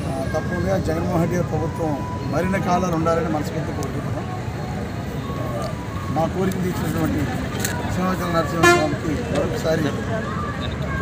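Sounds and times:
crowd chatter: 0.0 - 11.0
traffic noise: 0.0 - 11.0.

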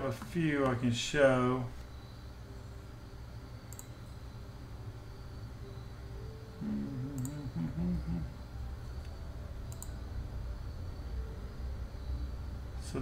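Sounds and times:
low background hum: 0.0 - 13.0
computer mouse clicking: 3.7 - 4.0, 7.1 - 7.4, 9.0 - 10.0
man humming: 6.6 - 8.5.

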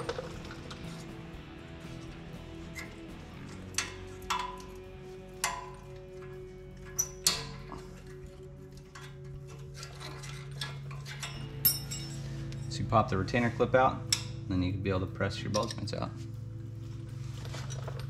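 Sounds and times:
background music with held notes: 0.0 - 18.0
hand tools clinking: 5.4 - 12.8, 15.4 - 16.0.

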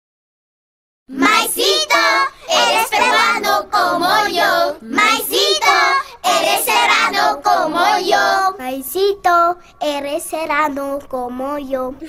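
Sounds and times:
child singing: 1.1 - 12.0.

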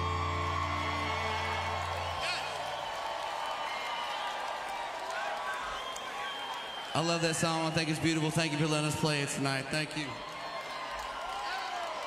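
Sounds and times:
crowd cheering and applauding: 0.0 - 12.0.

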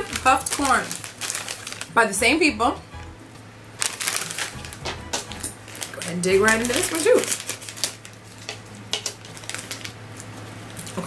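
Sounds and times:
sharp crackles of snack bag: 0.0 - 2.2, 3.8 - 11.0
snack bag crinkling and rustling: 0.0 - 2.2, 3.8 - 11.0.

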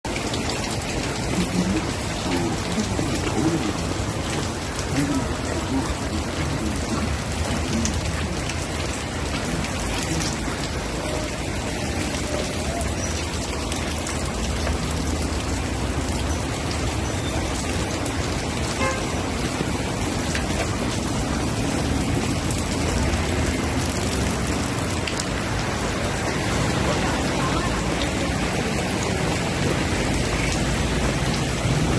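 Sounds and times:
steady rain: 0.0 - 31.9
faint voices: 1.0 - 14.1.

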